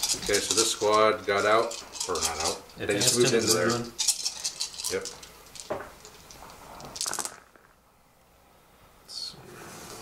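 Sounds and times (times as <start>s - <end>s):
dice clattering on a game mat: 0.1s - 7.8s.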